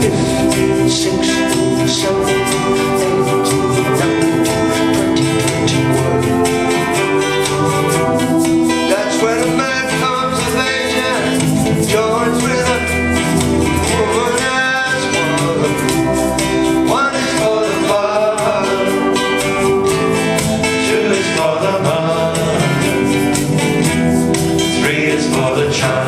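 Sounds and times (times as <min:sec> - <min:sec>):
folk-rock band playing: 0:00.0 - 0:26.0
gliding lead melody: 0:00.0 - 0:26.0.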